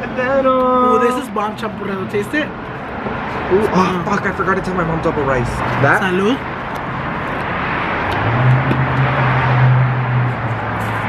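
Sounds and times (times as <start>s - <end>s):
street noise: 0.0s - 11.0s
vehicle engine droning: 2.6s - 11.0s.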